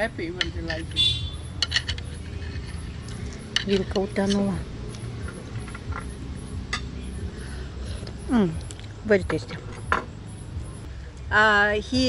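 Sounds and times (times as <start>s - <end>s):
steady low hum: 0.0s - 12.0s
cutlery knocking on plates: 9.2s - 10.1s.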